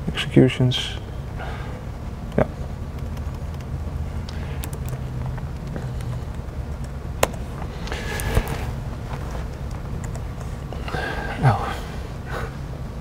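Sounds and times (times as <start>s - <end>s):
microphone system hum: 1.3s - 13.0s.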